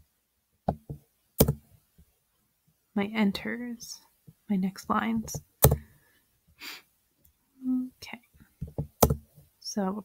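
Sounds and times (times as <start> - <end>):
laptop keyboard taps: 0.7 - 1.6, 5.3 - 5.9, 8.6 - 9.4.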